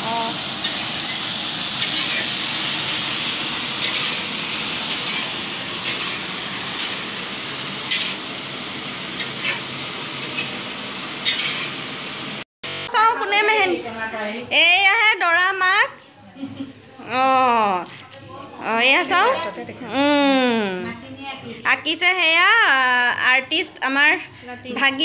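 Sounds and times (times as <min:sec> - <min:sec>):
vegetables sizzling in a wok: 0:00.0 - 0:14.4
metal ladle scraping a pan: 0:03.8 - 0:04.3, 0:04.9 - 0:07.0, 0:07.9 - 0:08.2, 0:11.2 - 0:11.8.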